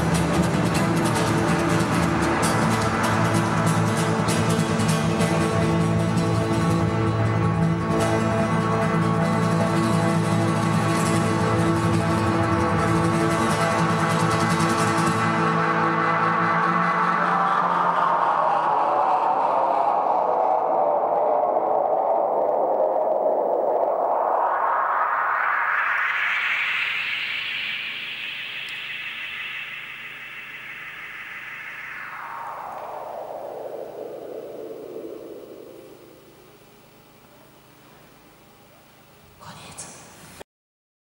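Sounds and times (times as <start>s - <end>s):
hissing electronic drone sweep: 0.0s - 37.9s.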